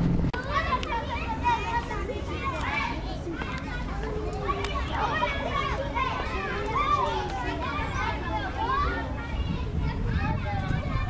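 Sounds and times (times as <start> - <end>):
low steady hum: 0.0 - 8.6
children chattering and calling: 0.3 - 11.0.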